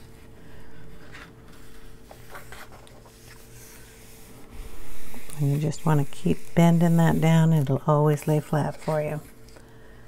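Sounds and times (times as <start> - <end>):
palms rubbing over paper: 0.0 - 9.5
paper pages rustling: 0.9 - 4.0.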